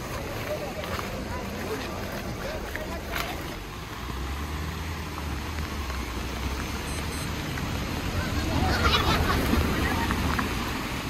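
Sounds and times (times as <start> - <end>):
fast-flowing river rushing: 0.0 - 11.0
low engine hum: 0.0 - 11.0.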